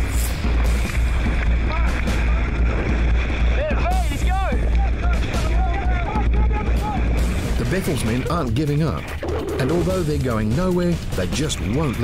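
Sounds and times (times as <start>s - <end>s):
men shouting: 3.6s - 7.1s.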